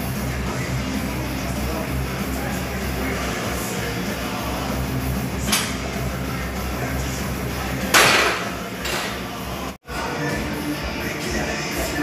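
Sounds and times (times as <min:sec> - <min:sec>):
background music: 0:00.0 - 0:12.0
barbell clanking into rack: 0:07.9 - 0:09.2.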